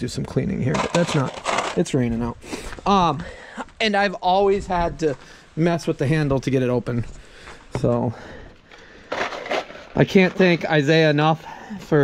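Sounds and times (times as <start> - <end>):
handling rustle: 0.7 - 2.2.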